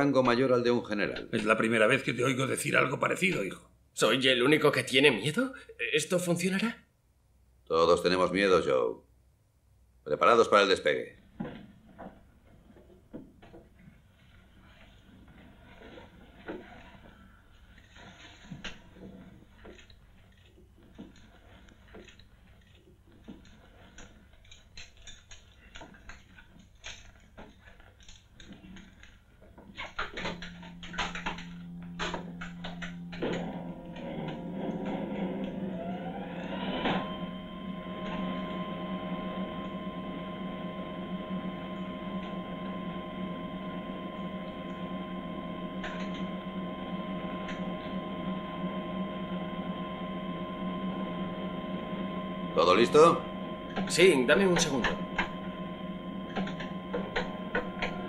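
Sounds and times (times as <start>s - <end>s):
machinery drone of several tones: 29.8s - 58.0s.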